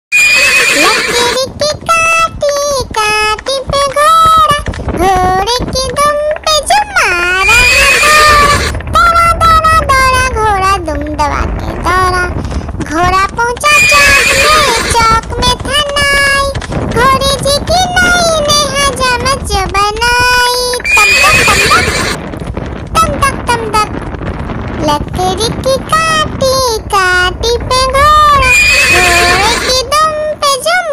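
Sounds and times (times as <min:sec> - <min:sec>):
horse whinnying: 0:00.1 - 0:01.4, 0:07.4 - 0:08.8, 0:13.7 - 0:15.0, 0:20.8 - 0:22.2, 0:28.4 - 0:29.7.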